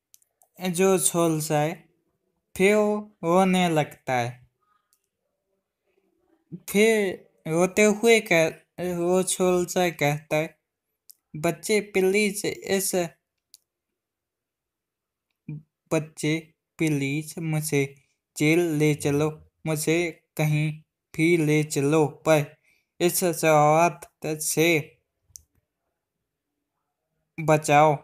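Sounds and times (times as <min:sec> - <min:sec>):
person speaking: 0:00.1 - 0:01.9, 0:02.6 - 0:04.8, 0:06.4 - 0:13.2, 0:15.5 - 0:25.6, 0:27.4 - 0:28.0.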